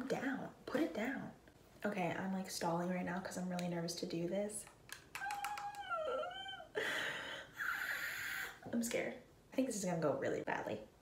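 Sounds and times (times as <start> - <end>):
woman whining nervously: 5.2 - 6.9.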